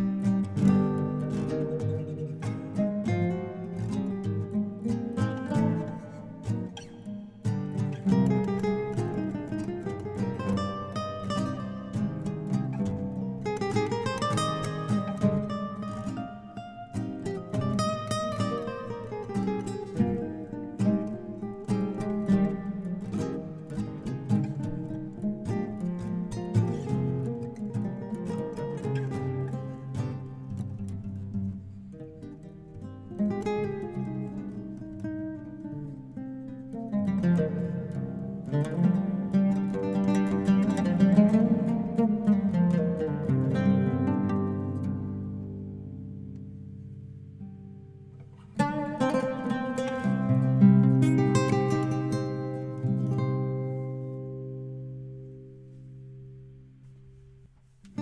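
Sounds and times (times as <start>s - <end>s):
oud and guitar playing: 0.0s - 58.0s.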